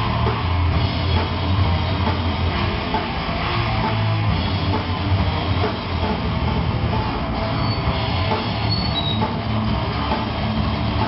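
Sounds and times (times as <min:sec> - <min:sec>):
bass guitar: 0:00.0 - 0:11.0
distorted electric guitars: 0:00.0 - 0:11.0
drums: 0:00.0 - 0:11.0.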